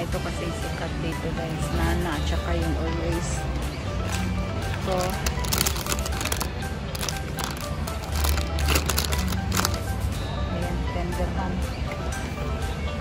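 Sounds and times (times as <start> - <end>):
background music with bass line: 0.0 - 13.0.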